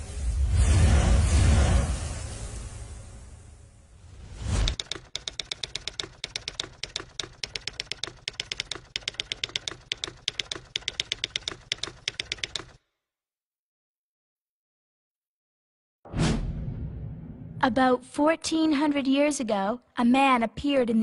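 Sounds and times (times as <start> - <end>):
typewriter key strikes: 4.6 - 12.8.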